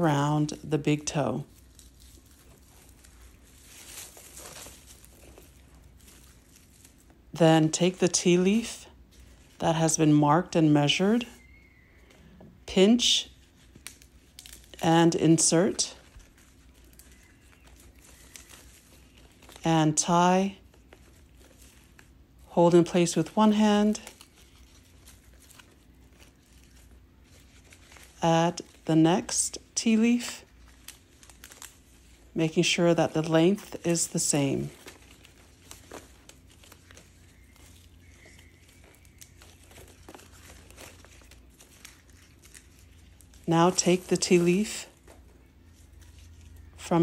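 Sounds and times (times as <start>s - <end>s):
low room hum: 0.0s - 47.0s
hands rustling plastic twine: 0.2s - 12.2s, 13.0s - 46.9s.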